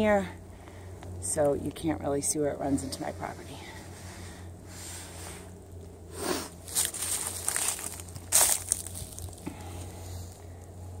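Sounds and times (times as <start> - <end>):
steady low hum: 0.0 - 11.0
footsteps crunching on dry leaves: 6.5 - 10.4.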